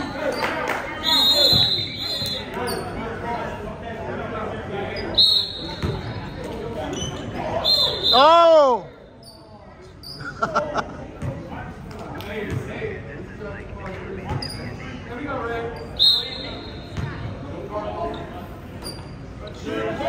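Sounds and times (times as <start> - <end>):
voices echoing in a hall: 0.0 - 20.0
basketball bouncing: 5.8 - 6.1
shoes squeaking on hardwood floor: 14.3 - 15.0.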